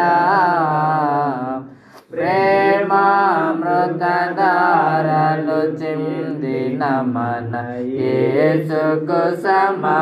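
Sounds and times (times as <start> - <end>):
person singing a hymn: 0.0 - 10.0.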